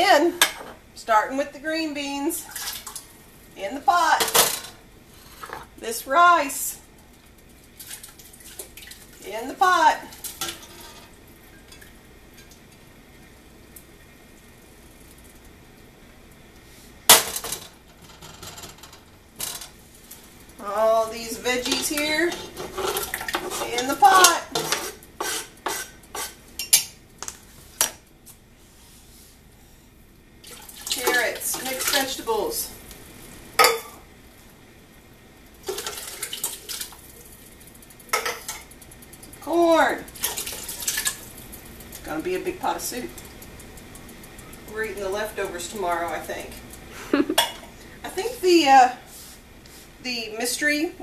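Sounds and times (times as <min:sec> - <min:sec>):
metal pot clattering: 0:21.5 - 0:27.0.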